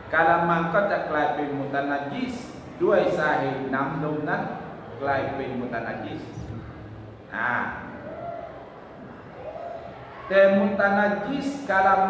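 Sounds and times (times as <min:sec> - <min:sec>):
faint low murmur: 0:00.0 - 0:12.0.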